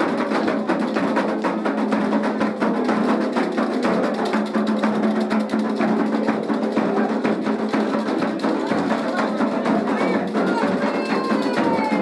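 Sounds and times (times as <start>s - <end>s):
hand drums fast rhythm: 0.0s - 12.0s
wood block accent: 0.0s - 12.0s.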